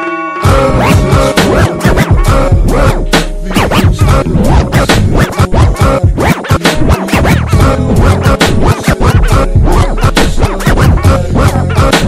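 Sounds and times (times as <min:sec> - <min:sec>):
record scratching: 0:00.4 - 0:12.0
slowed hip-hop beat with heavy bass: 0:00.4 - 0:12.0.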